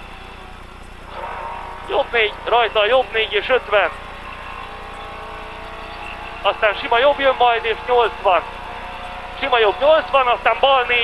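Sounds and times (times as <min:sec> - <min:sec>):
car engine low hum: 0:00.0 - 0:11.0
rushing noise: 0:00.0 - 0:11.0.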